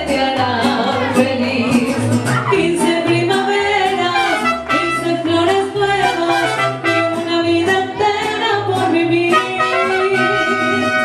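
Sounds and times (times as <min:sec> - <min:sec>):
mariachi band playing: 0:00.0 - 0:11.0
person singing: 0:00.0 - 0:11.0
trumpets playing melody: 0:04.1 - 0:05.2, 0:05.9 - 0:07.3, 0:09.3 - 0:11.0.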